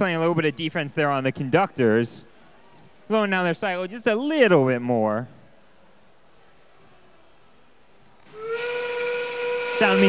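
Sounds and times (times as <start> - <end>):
steam whistle blast: 8.3 - 10.0.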